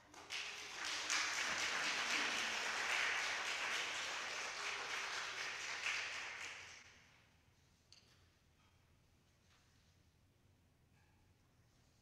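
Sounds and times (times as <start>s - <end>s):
congregation applauding: 0.0s - 6.9s.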